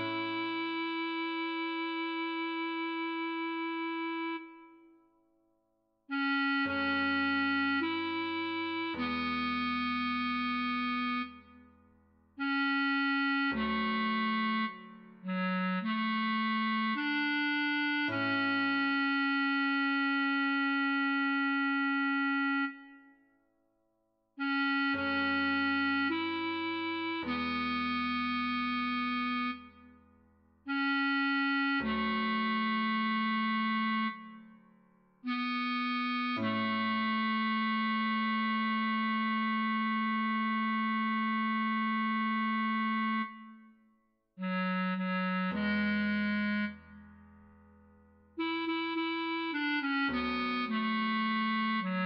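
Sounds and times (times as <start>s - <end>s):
bass clarinet notes: 0.0s - 4.9s, 6.1s - 11.7s, 12.4s - 23.1s, 24.4s - 30.0s, 30.6s - 34.6s, 35.2s - 43.8s, 44.4s - 52.0s.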